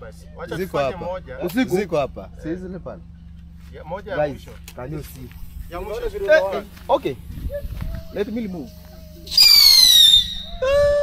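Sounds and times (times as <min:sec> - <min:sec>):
lower held tone: 0:07.5 - 0:11.0
whistling firework: 0:09.3 - 0:11.0.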